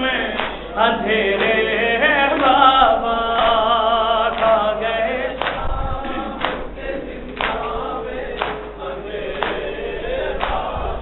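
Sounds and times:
man singing through a microphone: 0.0 - 11.0
men chanting: 0.0 - 11.0.

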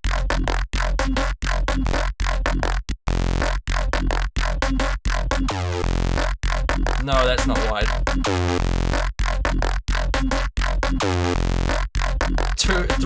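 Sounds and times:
choppy synth bass stabs: 0.0 - 13.0.

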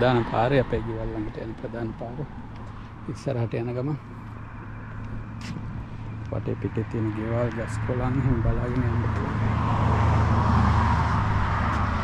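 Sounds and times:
low hum of road traffic: 0.0 - 12.0.

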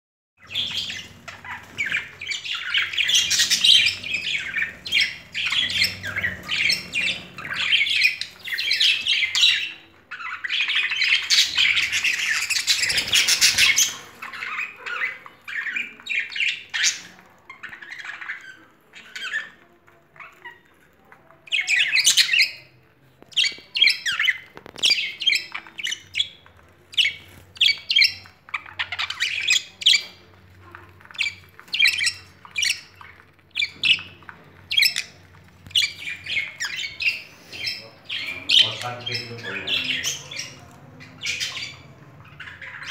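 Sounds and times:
budgerigars chirping and squawking: 0.4 - 42.9.

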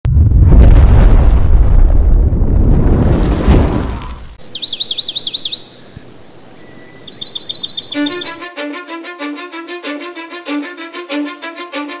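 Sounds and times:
quiet hiss: 4.4 - 7.8
bird trilling: 4.4 - 8.5.

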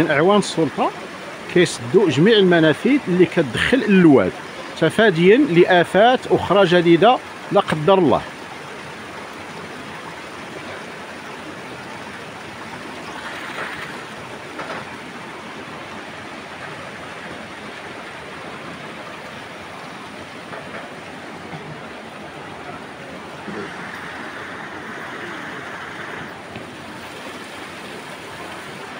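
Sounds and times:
steady rushing outdoor noise: 0.0 - 28.9.

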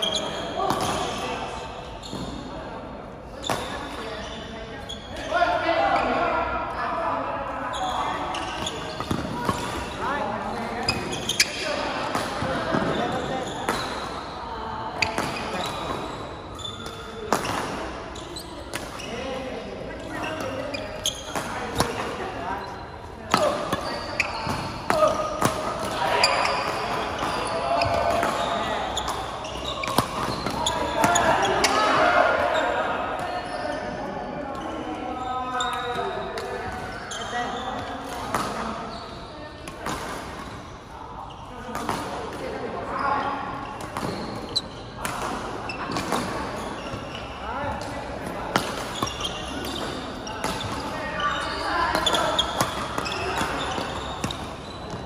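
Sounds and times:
indistinct chatter of players: 0.0 - 55.0.

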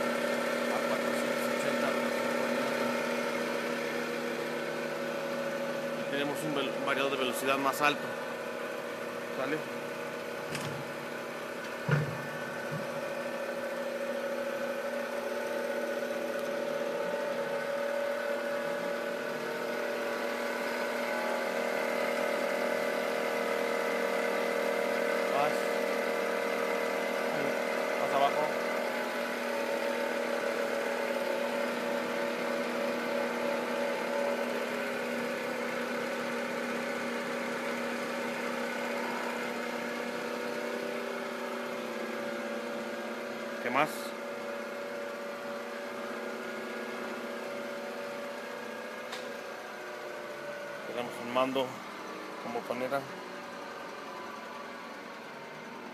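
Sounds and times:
milling machine spindle whirring: 0.0 - 55.9.

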